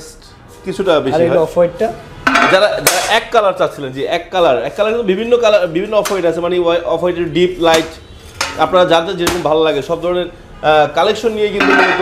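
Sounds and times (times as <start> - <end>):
people talking: 0.0 - 8.0, 8.6 - 12.0
ceramic clinking and clattering: 2.3 - 2.6, 8.4 - 8.7, 11.6 - 12.0
sharp knock: 9.2 - 9.5.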